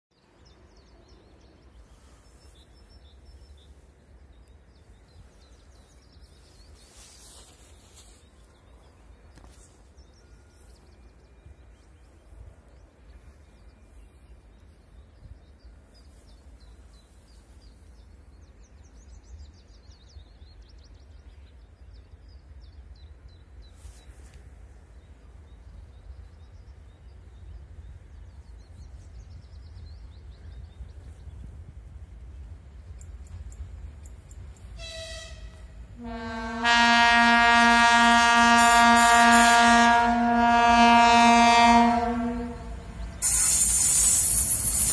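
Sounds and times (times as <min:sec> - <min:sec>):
distant diesel locomotive rumble: 0:00.2 - 0:44.9
birds chirping: 0:32.1 - 0:44.9.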